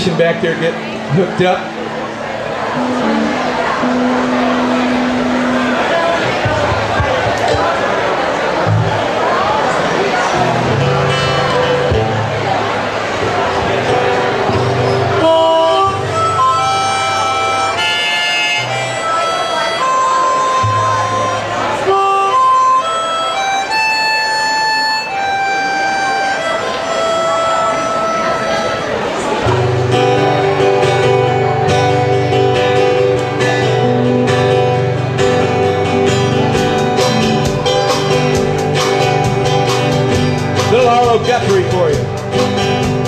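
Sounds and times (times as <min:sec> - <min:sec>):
harmonica melody: 0:00.0 - 0:07.6, 0:08.6 - 0:43.0
acoustic and electric guitars: 0:00.0 - 0:43.0
band playing sustained chords: 0:00.0 - 0:43.0.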